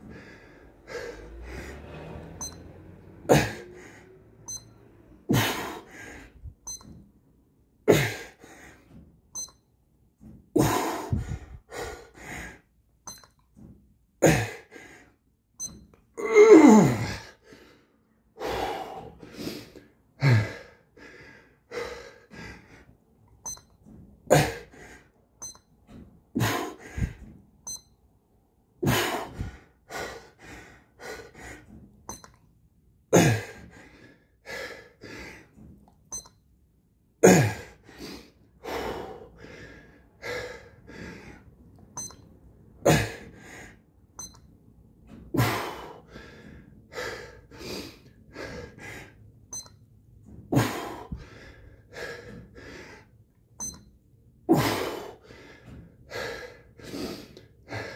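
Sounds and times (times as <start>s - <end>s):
man breathing hard: 0.0s - 2.1s, 3.3s - 4.4s, 5.3s - 6.6s, 7.9s - 9.0s, 10.6s - 12.8s, 14.3s - 15.2s, 16.8s - 23.0s, 24.3s - 25.2s, 26.4s - 27.3s, 28.8s - 31.8s, 33.2s - 35.7s, 37.3s - 41.6s, 42.9s - 44.0s, 45.3s - 49.4s, 50.5s - 53.4s, 54.5s - 57.9s.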